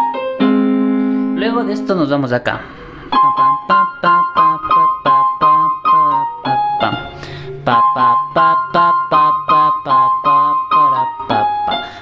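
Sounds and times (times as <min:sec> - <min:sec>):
electronic keyboard piano melody: 0:00.0 - 0:12.0.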